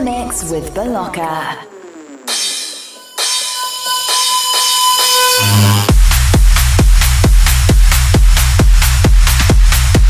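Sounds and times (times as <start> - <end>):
bell-like high tone: 2.3 - 5.9.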